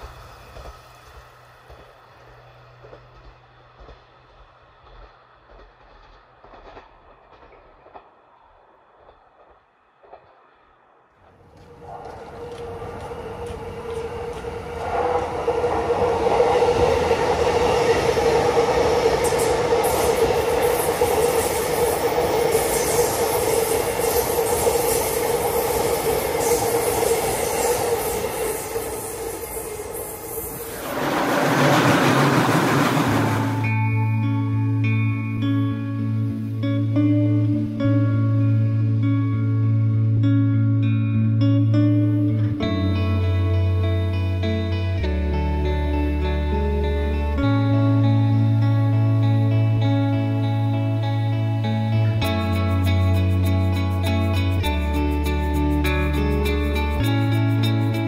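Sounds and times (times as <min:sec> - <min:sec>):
electric train wheels rumbling on rails: 0:00.0 - 0:58.0
train whine: 0:00.0 - 0:58.0.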